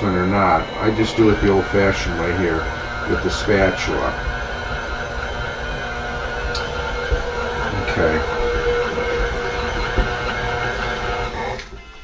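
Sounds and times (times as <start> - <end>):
stand mixer running: 0.0 - 12.0.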